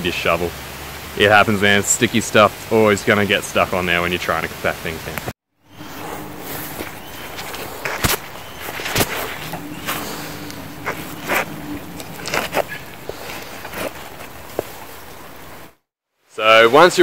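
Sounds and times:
shovel scraping clay off boot: 0:05.8 - 0:15.6.

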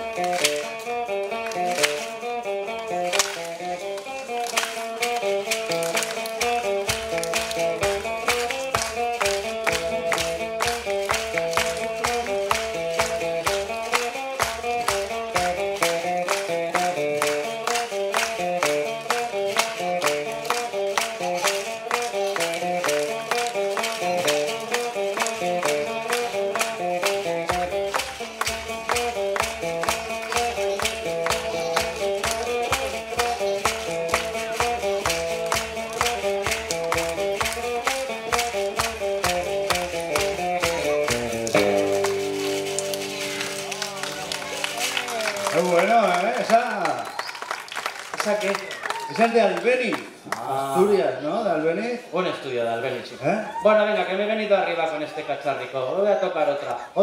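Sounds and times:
quick percussive beat: 0:00.0 - 0:47.0
electric guitar tune: 0:00.0 - 0:47.5.

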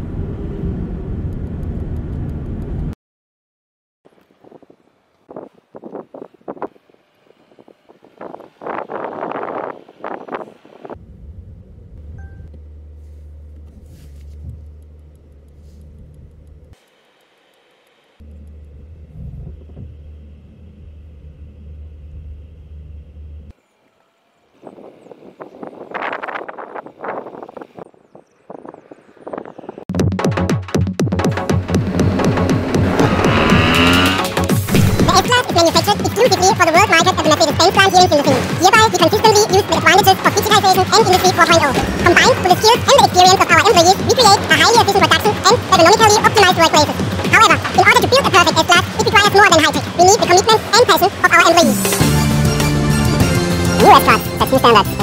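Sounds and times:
car low rumble: 0:00.0 - 0:02.9, 0:04.6 - 0:16.8, 0:18.2 - 0:23.6, 0:31.4 - 0:55.0
rustling noise: 0:12.9 - 0:16.8.

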